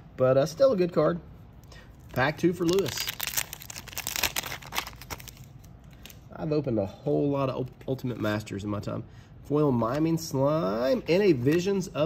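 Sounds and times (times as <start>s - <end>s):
foil wrapper tearing and crinkling: 2.2s - 6.1s.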